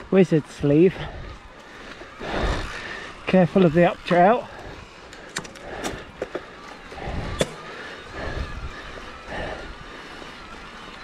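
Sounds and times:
bike tyre rumble and rattle: 0.0s - 11.0s.

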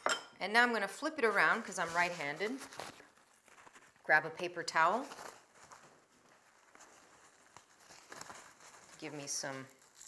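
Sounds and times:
paper towel crinkling: 1.2s - 10.0s.

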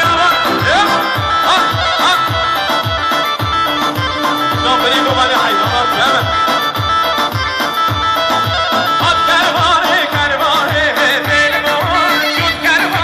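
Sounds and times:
steady drum beat: 0.0s - 13.0s.

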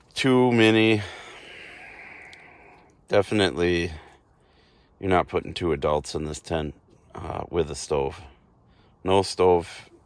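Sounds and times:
breathy exhale: 1.0s - 2.9s.

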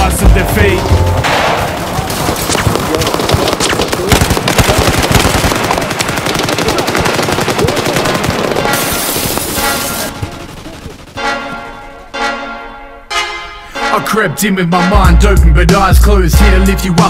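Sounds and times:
machine-gun fire: 0.9s - 11.3s.

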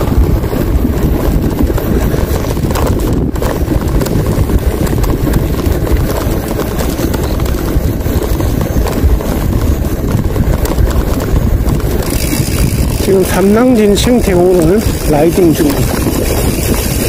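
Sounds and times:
bicycle tyres rolling on concrete: 0.0s - 17.0s
wind buffeting microphone: 0.0s - 17.0s.

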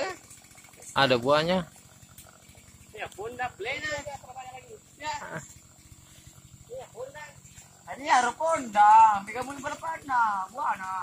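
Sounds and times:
people talking: 2.9s - 5.5s, 6.7s - 11.0s.

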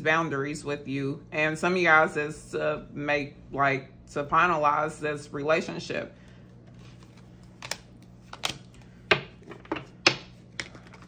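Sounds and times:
low steady hum: 0.0s - 11.0s
cards being handled: 6.6s - 11.0s.

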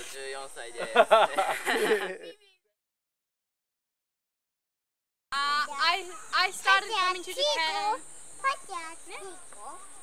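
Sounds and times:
insects chirring: 0.0s - 2.4s, 5.4s - 10.0s
person laughing: 0.9s - 2.3s.

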